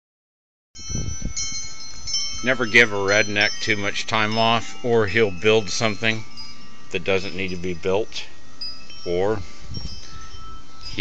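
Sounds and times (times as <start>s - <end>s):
bell-like chime tones: 0.8s - 11.0s
low rumble on microphone: 0.8s - 11.0s.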